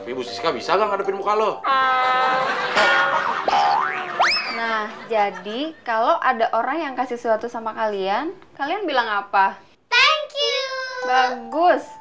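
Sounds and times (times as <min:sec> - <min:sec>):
comedy sound effect sting: 0:01.6 - 0:04.8
cartoon rising glide: 0:03.1 - 0:04.7.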